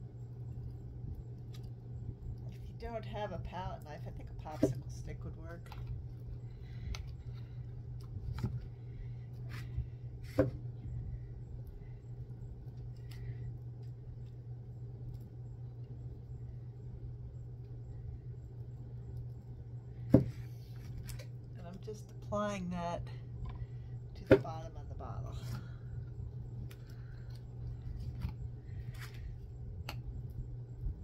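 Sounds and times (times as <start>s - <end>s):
steady low hum: 0.0s - 31.0s
person speaking: 21.6s - 23.2s, 24.2s - 25.6s.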